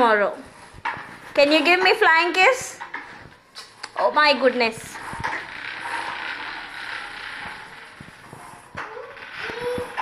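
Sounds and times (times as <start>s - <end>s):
bicycle rolling on a tiled floor: 0.0s - 10.0s
bicycle creaking: 0.4s - 10.0s.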